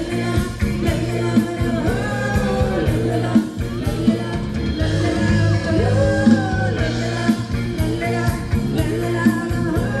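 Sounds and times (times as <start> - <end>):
bass: 0.0 - 10.0
drum beat: 0.0 - 10.0
person singing: 0.0 - 10.0.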